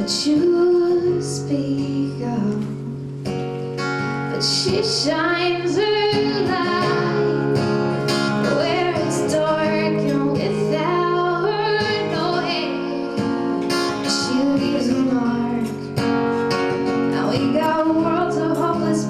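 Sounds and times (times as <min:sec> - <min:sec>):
woman singing into a microphone: 0:00.0 - 0:03.4, 0:04.1 - 0:19.0
acoustic guitar strumming: 0:00.0 - 0:19.0.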